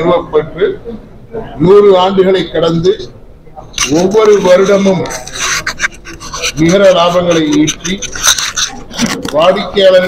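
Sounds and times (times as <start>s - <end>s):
man speaking into microphones: 3.8s - 5.6s, 6.2s - 10.0s
rasping hissing noise: 3.8s - 8.9s.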